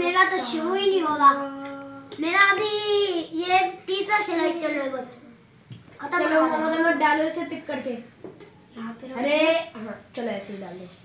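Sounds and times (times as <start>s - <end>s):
spoon clinking against dish: 8.2s - 8.7s.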